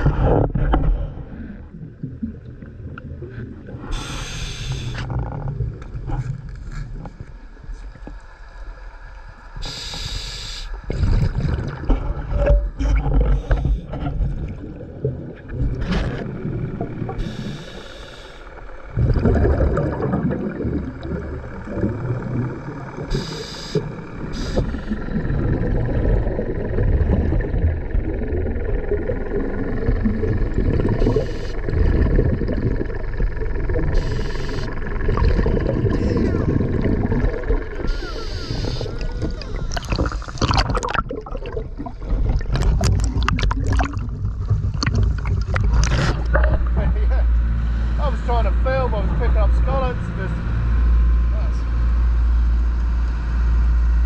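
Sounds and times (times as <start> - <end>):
churning water rumble: 0.0 - 9.7, 10.7 - 54.0
rumbling exhaled bubbles: 0.0 - 9.9, 10.8 - 48.1
regulator inhalation hiss: 3.9 - 5.1, 9.6 - 10.8, 17.2 - 18.6, 23.1 - 25.0, 31.0 - 31.6, 33.9 - 34.8, 37.8 - 39.2.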